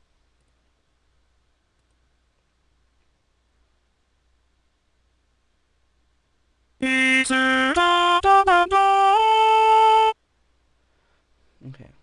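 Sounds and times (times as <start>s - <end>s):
synthesized voice singing: 6.8s - 10.2s.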